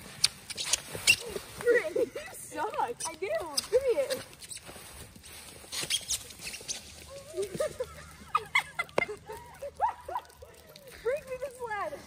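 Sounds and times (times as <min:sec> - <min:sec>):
scuffling and crunching in snow: 0:00.0 - 0:12.0
short crackling sounds: 0:00.0 - 0:12.0.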